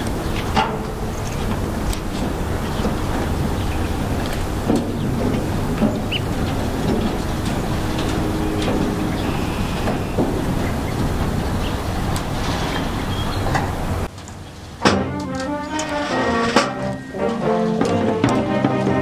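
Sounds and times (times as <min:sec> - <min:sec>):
low outdoor rumble: 0:00.0 - 0:18.8.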